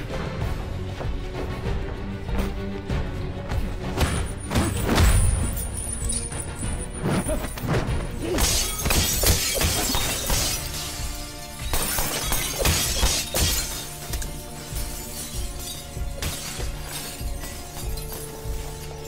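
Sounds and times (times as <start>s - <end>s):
film soundtrack music: 0.0s - 19.0s
glass shattering: 4.5s - 6.8s, 8.4s - 19.0s.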